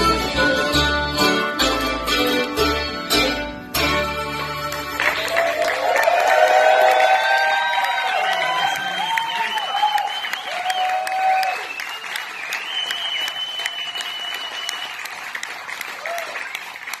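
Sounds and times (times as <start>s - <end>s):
audience applauding: 4.5s - 17.0s
whoops and shouts: 5.2s - 11.8s
high whistle: 8.8s - 15.1s.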